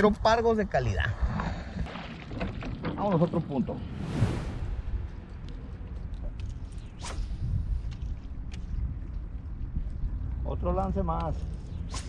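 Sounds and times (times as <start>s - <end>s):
low steady rumble: 3.8s - 6.8s.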